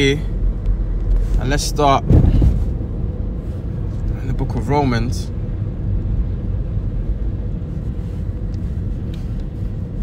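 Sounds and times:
car engine rumble: 0.0s - 10.0s.

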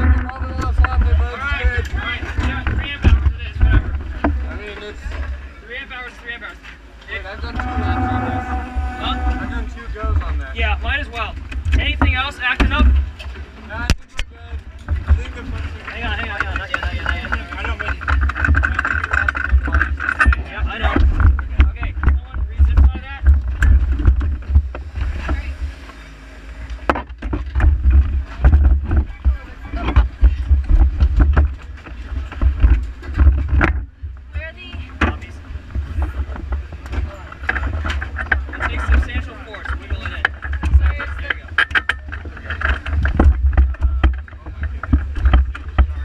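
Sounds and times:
wind rumble on microphone: 0.0s - 5.5s, 7.2s - 26.0s, 26.6s - 46.0s
people talking: 0.0s - 23.4s, 25.0s - 26.9s, 28.2s - 30.8s, 34.3s - 46.0s
knocks and clatter of handling: 11.2s - 25.4s, 26.8s - 46.0s.

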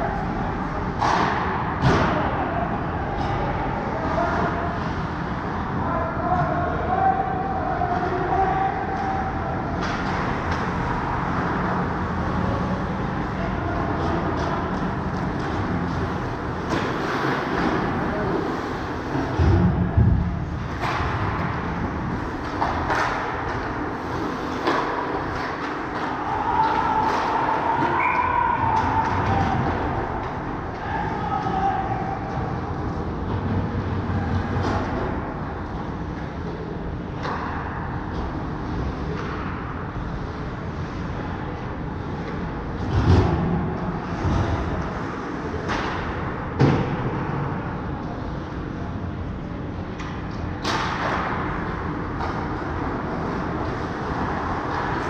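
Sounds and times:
arena rumble: 0.0s - 55.0s
skating and stick noise: 0.0s - 55.0s.

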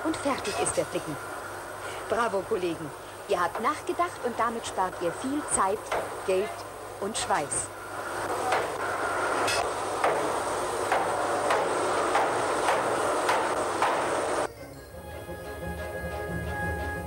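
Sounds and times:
workshop din: 0.0s - 14.6s
sledgehammers striking steel: 8.4s - 14.5s
music with sustained tones: 13.9s - 17.0s.

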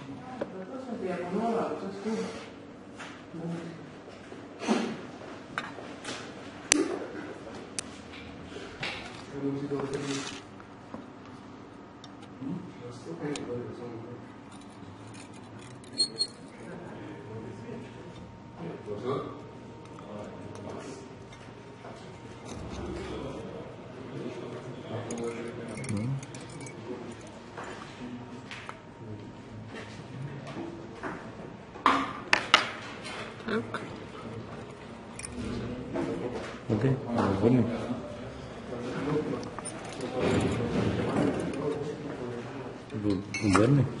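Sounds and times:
faint voices murmuring: 12.3s - 31.7s
small hard parts clinking: 25.0s - 27.4s.

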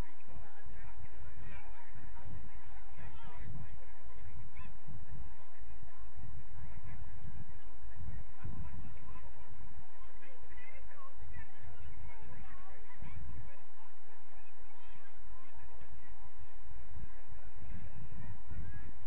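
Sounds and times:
faint distant shouts: 0.0s - 19.0s.

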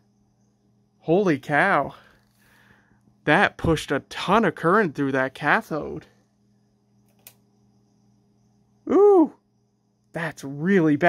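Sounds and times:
faint low electrical hum: 0.0s - 11.0s
faint click: 7.0s - 7.4s
person exclaiming: 8.9s - 9.4s.

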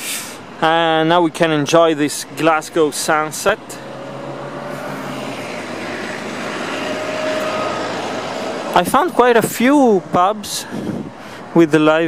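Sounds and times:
outdoor urban noise: 0.0s - 12.0s
steady engine drone: 1.8s - 11.6s.

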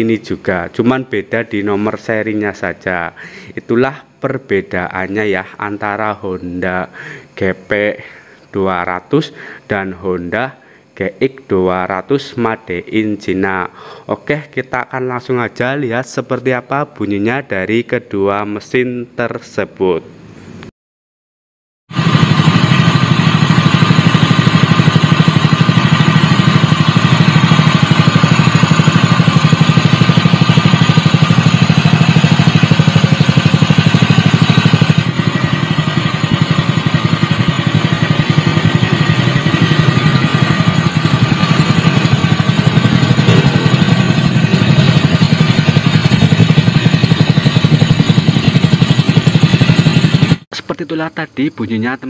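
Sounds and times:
small engine running steadily: 21.9s - 50.5s.

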